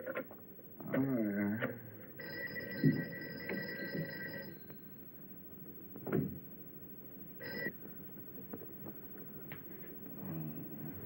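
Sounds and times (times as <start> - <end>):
bell telephone ringing: 2.2 - 4.8, 7.4 - 7.7.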